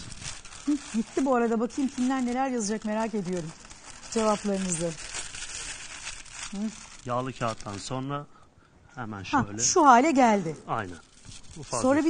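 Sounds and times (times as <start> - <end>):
baking paper crinkling: 0.0 - 8.2, 9.5 - 12.0.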